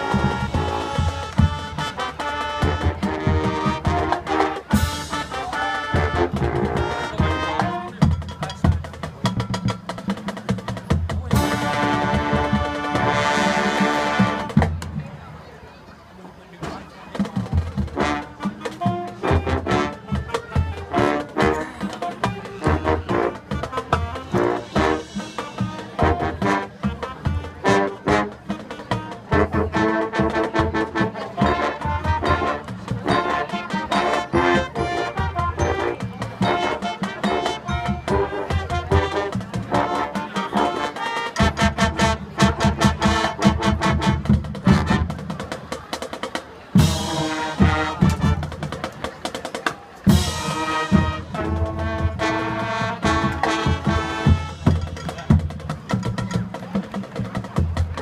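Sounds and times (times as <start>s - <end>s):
trumpets and trombones: 0.0s - 15.0s, 17.6s - 46.1s, 46.7s - 58.0s
drums keeping a steady beat: 0.0s - 15.4s, 16.5s - 58.0s
marching band playing: 0.0s - 15.6s, 16.5s - 58.0s.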